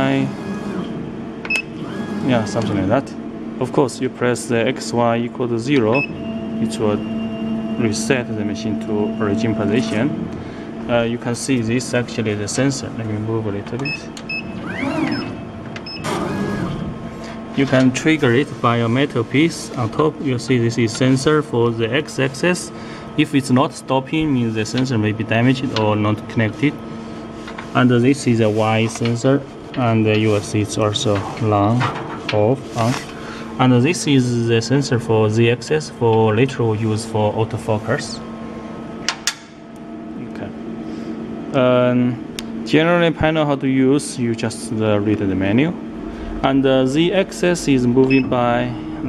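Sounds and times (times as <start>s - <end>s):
motors whining: 0.0s - 3.2s, 4.4s - 23.1s
electrical machine hum: 0.0s - 49.0s
key beeps: 5.9s - 6.2s, 13.8s - 16.0s, 48.1s - 48.3s
rush of noise: 45.8s - 48.0s.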